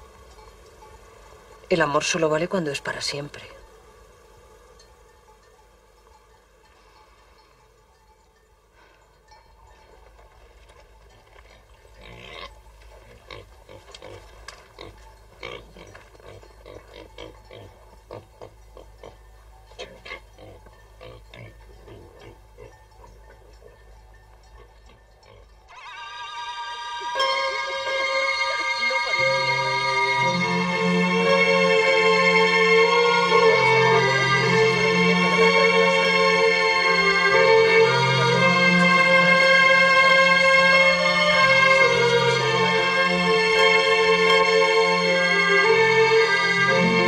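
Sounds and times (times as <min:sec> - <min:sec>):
farm animal grunting: 0:11.4 - 0:25.6.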